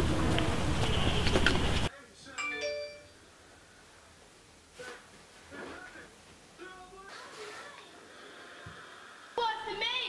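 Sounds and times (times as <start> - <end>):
two-note chime: 2.4 - 3.2.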